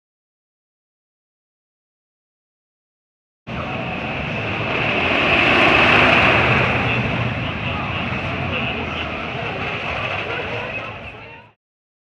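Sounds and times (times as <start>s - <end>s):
people's voices: 3.5s - 11.6s
roller coaster train on track: 3.5s - 11.6s.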